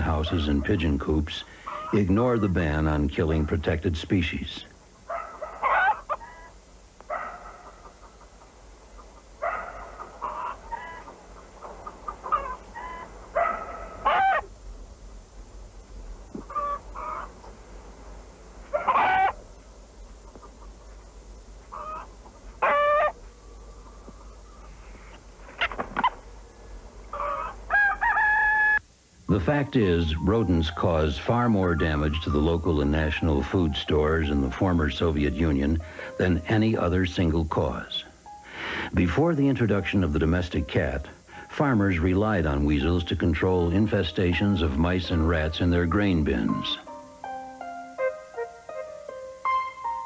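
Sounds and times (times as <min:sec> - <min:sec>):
chickens clucking and squawking: 0:00.0 - 0:02.4, 0:05.0 - 0:14.5, 0:16.3 - 0:17.6, 0:18.6 - 0:28.8.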